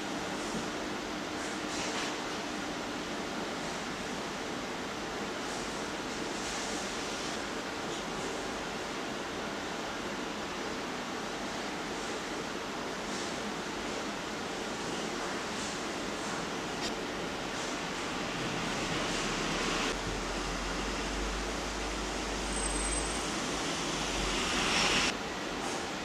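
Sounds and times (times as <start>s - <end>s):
steady rushing hiss: 14.1s - 25.2s.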